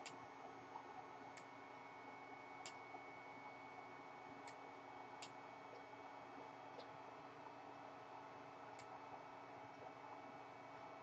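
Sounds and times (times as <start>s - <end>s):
computer mouse clicks: 0.0s - 1.6s, 2.6s - 3.0s, 4.4s - 5.9s, 8.7s - 9.0s
room noise hiss and whine: 0.0s - 11.0s.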